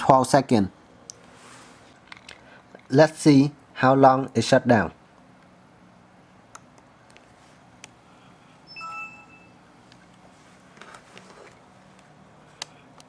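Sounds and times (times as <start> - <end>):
laptop shutdown chime: 8.7 - 9.6.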